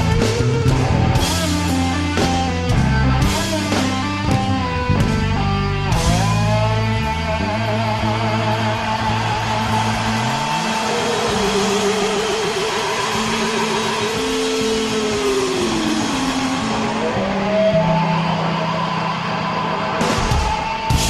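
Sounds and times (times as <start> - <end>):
bass notes: 0.0 - 12.1
lead guitar line with vibrato: 0.0 - 21.0.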